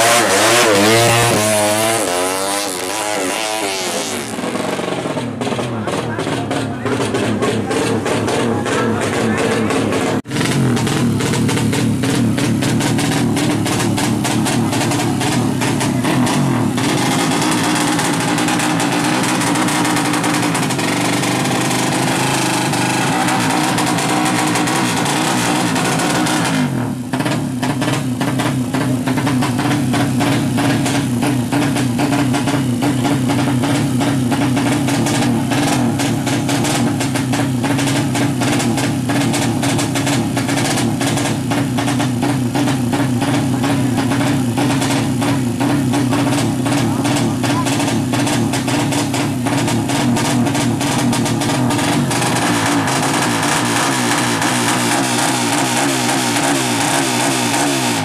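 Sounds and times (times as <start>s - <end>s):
racing motorcycle engine revving: 0.0s - 58.0s.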